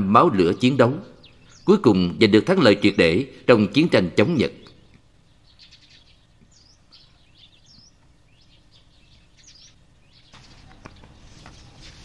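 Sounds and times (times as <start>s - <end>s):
low background hiss: 0.0s - 12.0s
faint bird chirps: 0.3s - 3.4s, 4.6s - 11.8s.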